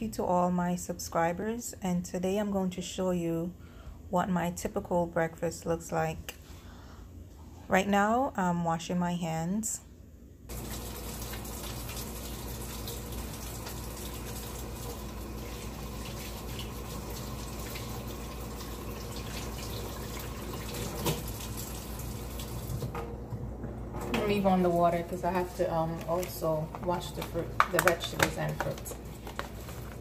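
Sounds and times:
sink tap running: 10.5s - 23.1s.

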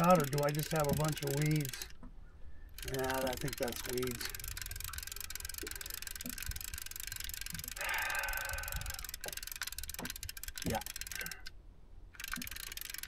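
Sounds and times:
fishing reel clicking: 0.0s - 2.0s, 2.7s - 13.0s.

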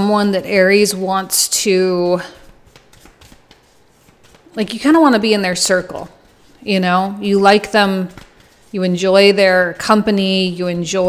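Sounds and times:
cards being shuffled: 2.2s - 11.0s.

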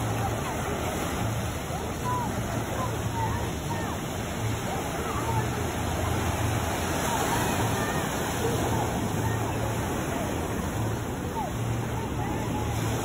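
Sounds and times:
faint voices: 0.0s - 13.0s
small waves breaking on shore: 0.0s - 13.0s.

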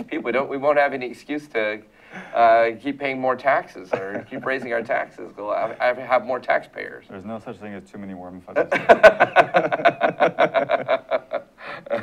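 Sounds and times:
men laughing heartily: 3.9s - 5.8s, 8.6s - 12.0s.

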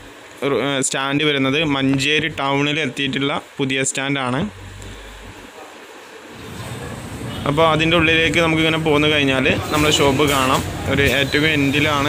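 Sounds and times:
street traffic: 6.3s - 12.0s.

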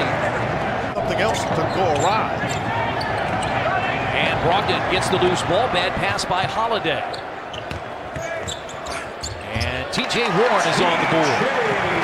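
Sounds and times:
arena crowd noise: 0.0s - 12.0s
sneaker squeaks: 1.5s - 3.6s, 7.1s - 9.8s.

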